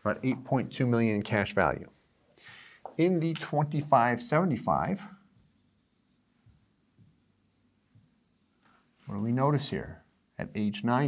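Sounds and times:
stylus writing on touchscreen: 0:04.6 - 0:08.8.

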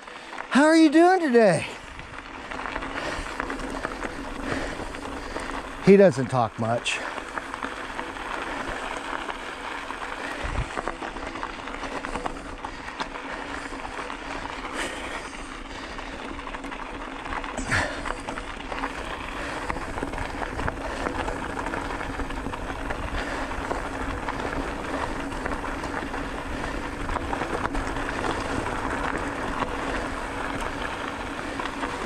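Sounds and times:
bicycle tyres on gravel: 0:00.0 - 0:32.0.

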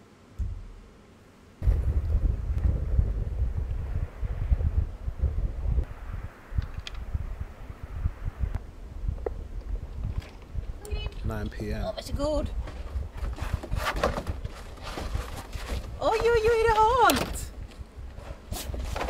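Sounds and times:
wind buffeting microphone: 0:01.6 - 0:19.0.

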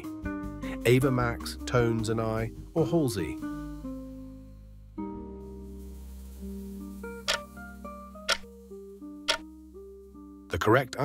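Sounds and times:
soft background music: 0:00.0 - 0:11.0
countdown timer ticking: 0:07.3 - 0:07.5, 0:08.3 - 0:08.5, 0:09.3 - 0:09.5.

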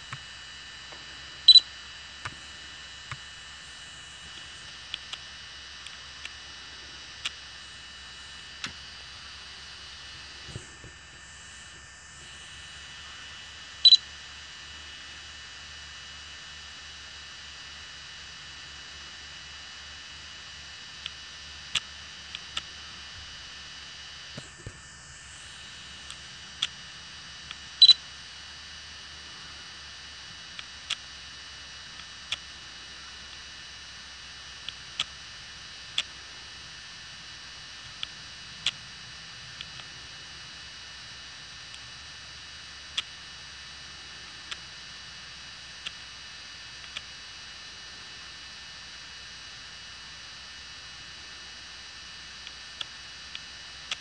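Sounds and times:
faint high whine: 0:00.0 - 0:54.0
steady high hum: 0:00.0 - 0:54.0
short electronic beeps: 0:01.5 - 0:01.7
small click: 0:46.8 - 0:47.1.

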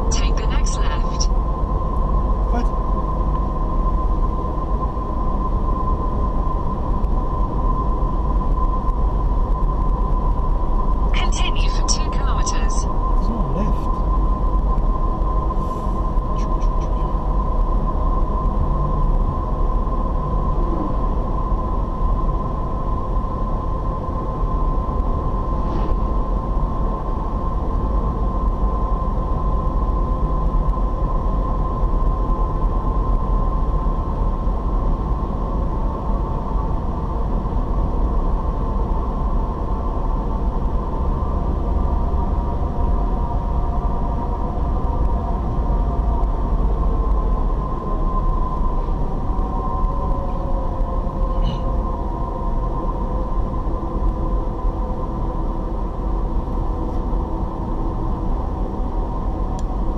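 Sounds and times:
engine and tyre rumble: 0:00.0 - 0:11.3, 0:12.2 - 0:59.9
thin steady whine: 0:00.0 - 0:59.9.

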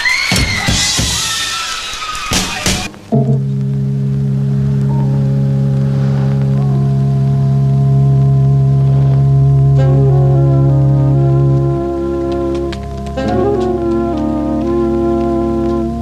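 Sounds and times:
sustained organ chord: 0:03.1 - 0:16.0.

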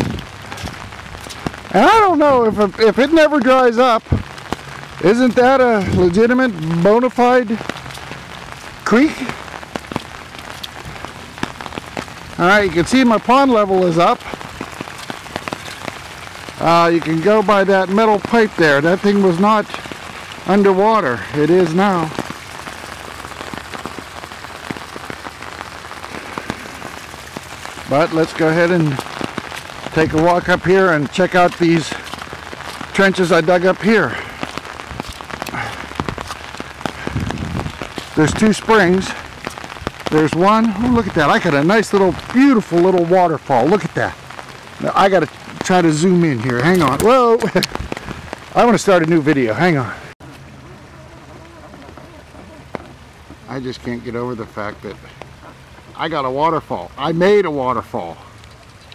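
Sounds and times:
rain falling on a pond: 0:00.0 - 0:58.9
water trickling down small waterfall: 0:00.0 - 0:58.9.

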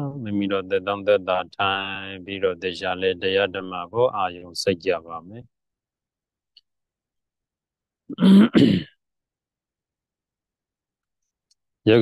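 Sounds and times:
man clearing his throat: 0:08.1 - 0:09.0.

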